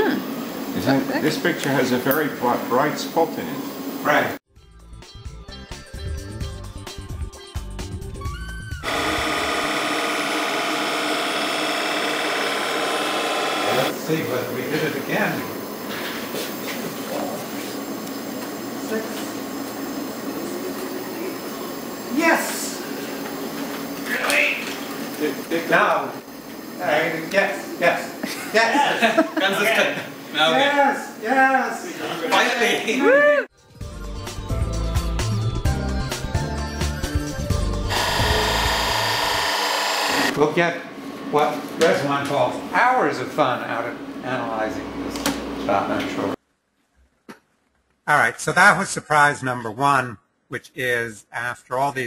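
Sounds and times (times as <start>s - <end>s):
low background music: 4.5s - 8.8s, 33.5s - 37.9s
machinery drone with high whine: 8.8s - 15.8s, 37.9s - 40.4s
machinery humming: 8.8s - 30.5s, 37.8s - 40.4s.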